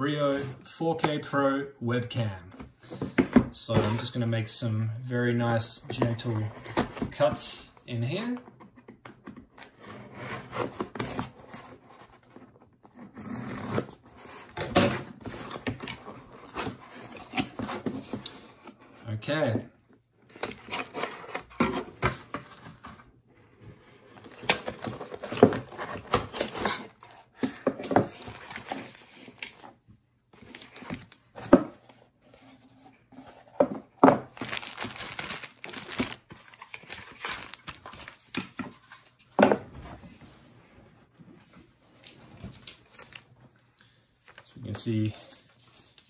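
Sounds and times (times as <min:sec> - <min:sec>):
packaging rustling and crinkling: 0:34.2 - 0:39.1.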